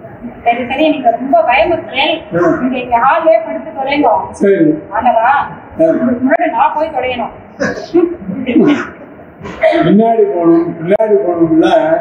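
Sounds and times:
man talking: 0:02.4 - 0:02.6.

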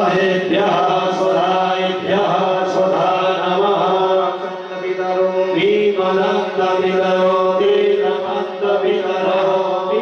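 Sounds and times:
mantra chanting: 0:00.0 - 0:10.0.

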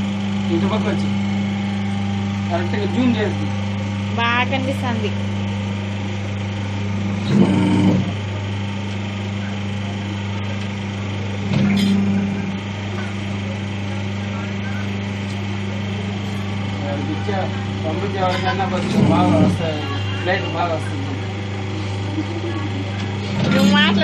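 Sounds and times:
machine humming: 0:00.0 - 0:24.0.

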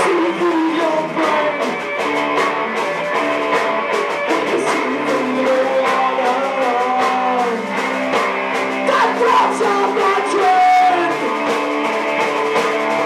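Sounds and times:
electric guitar: 0:00.0 - 0:13.0.

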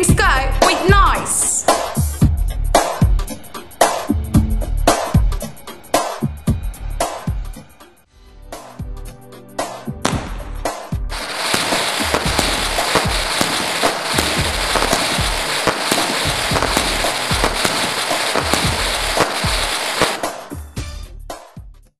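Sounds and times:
fireworks hissing and crackling: 0:11.1 - 0:20.6
fireworks shells thumping: 0:11.3 - 0:20.2.

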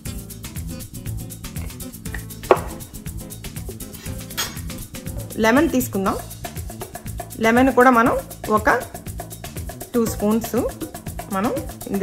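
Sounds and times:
background music: 0:00.0 - 0:12.0
knife striking cutting board: 0:02.1 - 0:03.0.

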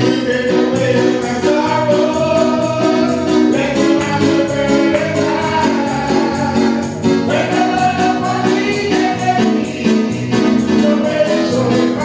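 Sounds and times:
gospel choir singing: 0:00.0 - 0:12.0
tambourine shaken: 0:00.0 - 0:12.0.

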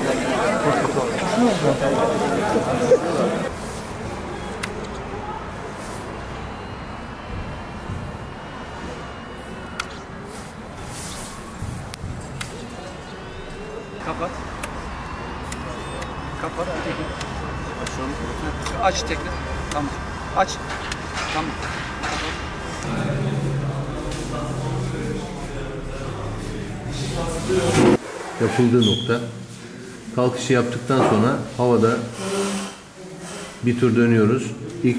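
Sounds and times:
indistinct talking: 0:00.0 - 0:28.7
faint voices: 0:00.0 - 0:28.8.

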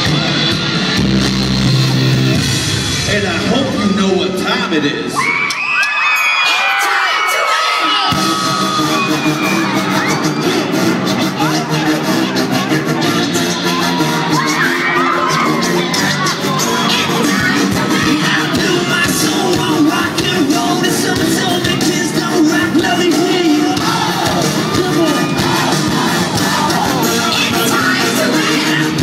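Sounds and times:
loud live band music: 0:00.0 - 0:05.2, 0:06.6 - 0:29.0
crowd cheering and shouting: 0:00.0 - 0:29.0.

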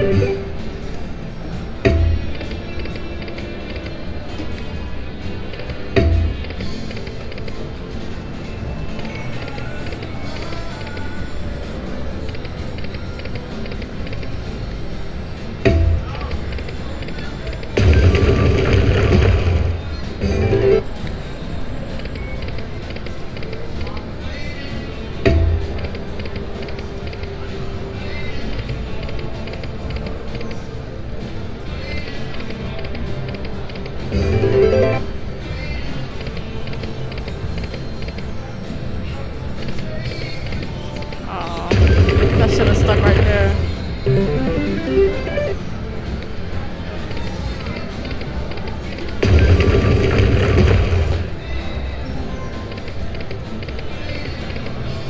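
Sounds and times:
slot machine win jingles: 0:00.0 - 0:00.6, 0:34.1 - 0:35.2, 0:41.7 - 0:45.9
slot machine music and chimes: 0:00.0 - 0:00.7, 0:17.8 - 0:20.9, 0:34.1 - 0:35.3, 0:41.8 - 0:46.0
murmur of voices: 0:00.0 - 0:55.0.

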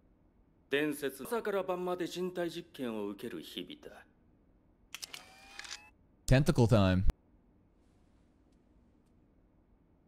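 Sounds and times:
mechanical clicking and whirring: 0:04.9 - 0:05.9.

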